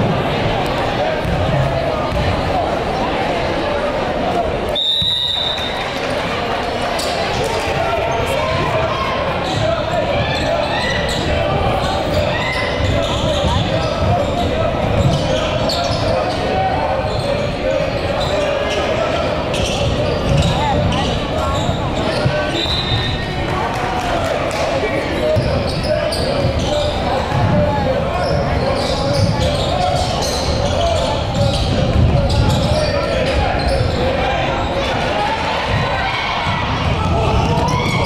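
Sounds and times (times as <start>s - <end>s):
crowd chatter: 0.0s - 38.0s
sneaker squeaks: 7.0s - 23.4s, 25.2s - 34.9s, 35.6s - 38.0s.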